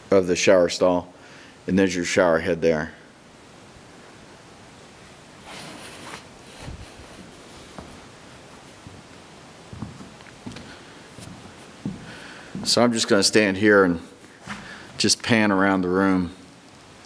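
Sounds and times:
handheld camera rustling: 5.4s - 13.2s
footsteps on concrete floor: 5.5s - 13.5s, 14.2s - 15.1s.

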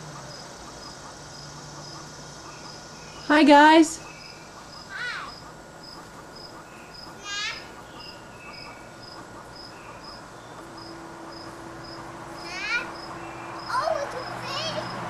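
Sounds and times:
insect chirping: 0.0s - 15.0s.

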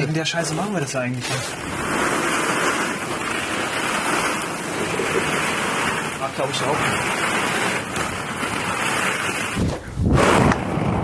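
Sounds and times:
plastic balls clattering: 0.0s - 9.8s.

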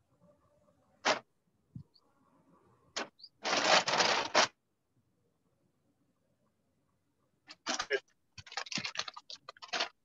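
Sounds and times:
plastic sack rustling: 3.4s - 4.6s, 7.6s - 10.0s.

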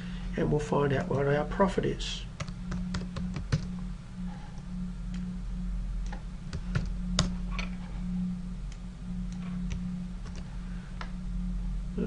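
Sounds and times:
steady low hum: 0.0s - 12.0s
keyboard keys clicking: 2.4s - 3.7s, 6.0s - 7.7s, 9.3s - 10.5s.

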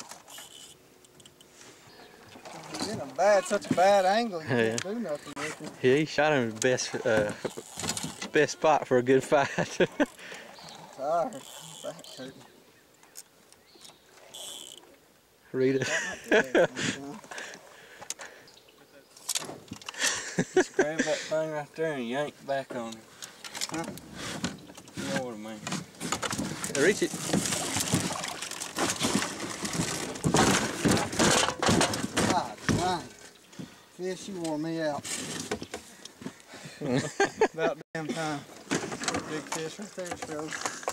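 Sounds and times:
fishing reel drag buzzing: 0.1s - 0.8s, 10.7s - 12.2s, 14.2s - 14.9s
fish splashing and thrashing: 6.8s - 8.4s, 25.8s - 33.8s, 38.5s - 40.9s
knocks and thumps against hull: 23.8s - 33.8s, 38.5s - 40.9s.

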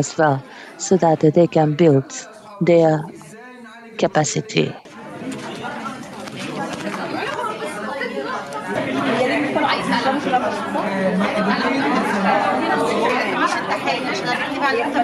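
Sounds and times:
many voices chattering: 0.0s - 15.0s.

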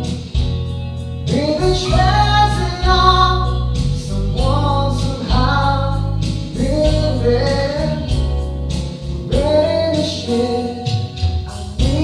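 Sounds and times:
instrumental accompaniment with bass: 0.0s - 12.0s
man singing into microphone: 1.3s - 8.4s, 9.2s - 12.0s.

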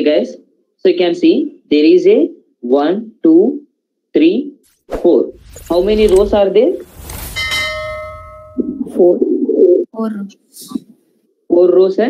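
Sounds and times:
bell chime: 7.4s - 8.8s.

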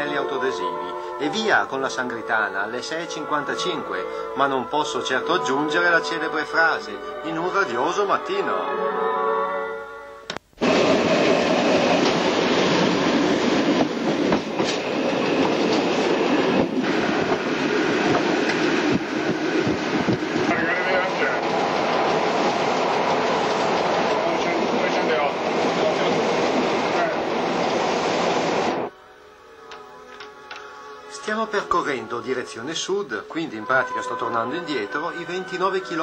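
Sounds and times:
music: 0.0s - 10.4s, 28.9s - 36.0s
wheels rumbling on rails: 10.6s - 28.9s.

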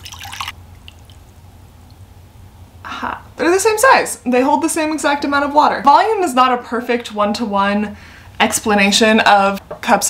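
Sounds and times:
water pouring into a glass: 0.0s - 1.2s
faint water drips: 0.0s - 2.0s.

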